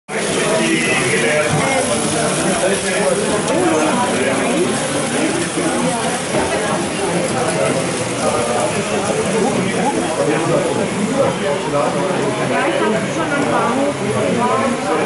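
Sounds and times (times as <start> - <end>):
toy trains rattling on metal track: 0.1 - 11.2.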